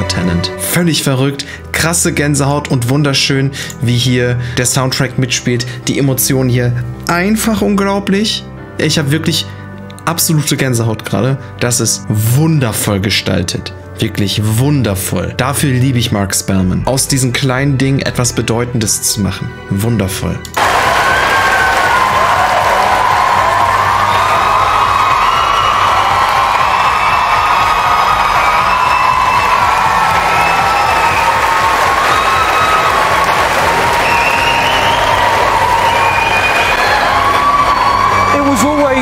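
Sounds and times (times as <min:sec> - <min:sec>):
background music with bass: 0:00.0 - 0:39.0
audience cheering and applauding: 0:20.6 - 0:39.0
loud whoops: 0:20.6 - 0:39.0.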